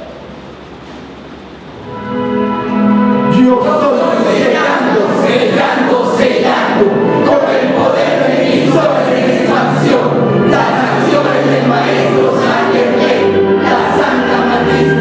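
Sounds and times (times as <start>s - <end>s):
group singing long held notes: 1.8s - 15.0s.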